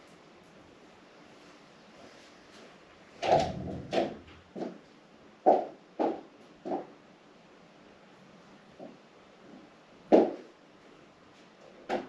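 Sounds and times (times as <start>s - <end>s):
knocks and thumps: 3.2s - 4.8s, 5.4s - 6.9s, 10.1s - 10.5s.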